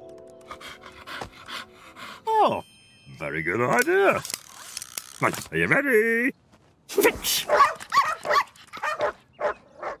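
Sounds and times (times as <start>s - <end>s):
dogs barking: 7.4s - 10.0s.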